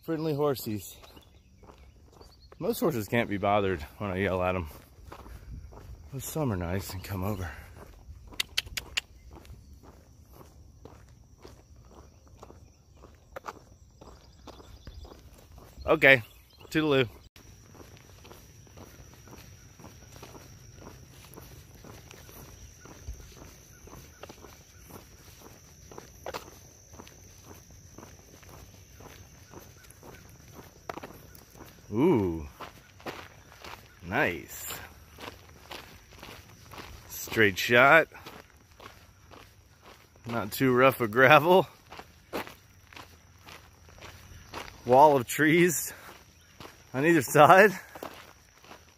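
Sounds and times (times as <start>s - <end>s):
footsteps on road and gravel: 0.0s - 48.9s.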